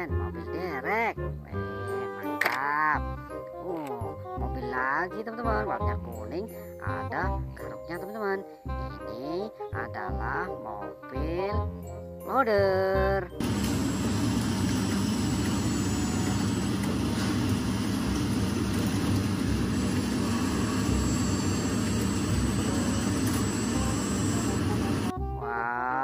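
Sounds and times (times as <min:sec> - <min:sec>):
wheel loader engine running: 0:13.4 - 0:25.1.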